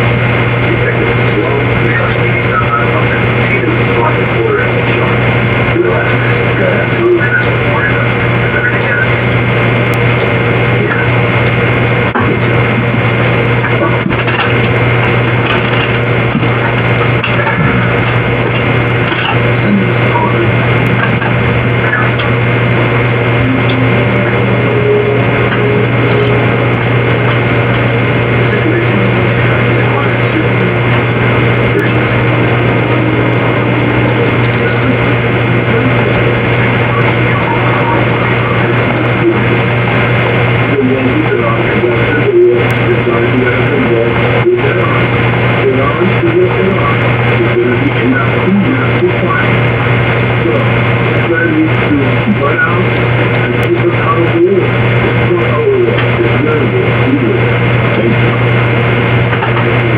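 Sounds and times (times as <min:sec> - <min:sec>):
constant low hum: 0:00.0 - 0:59.9
dense even noise: 0:00.0 - 0:59.9.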